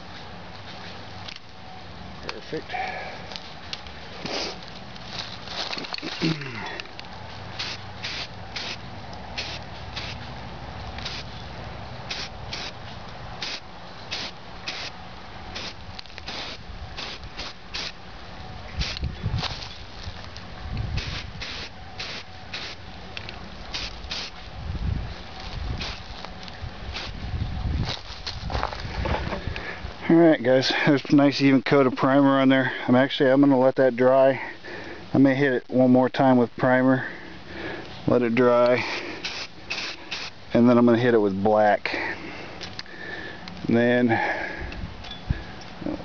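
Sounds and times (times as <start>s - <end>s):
aerosol spray bursts: 7.6s - 8.8s, 9.4s - 10.2s, 11.0s - 11.3s, 12.1s - 12.8s, 13.4s - 18.0s, 18.8s - 19.0s, 21.0s - 22.8s, 23.7s - 24.4s, 25.8s - 26.0s, 39.2s - 40.3s.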